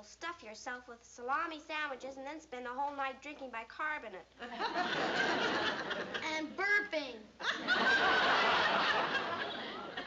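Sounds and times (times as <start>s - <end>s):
audience laughter: 4.4s - 6.2s, 7.4s - 10.0s.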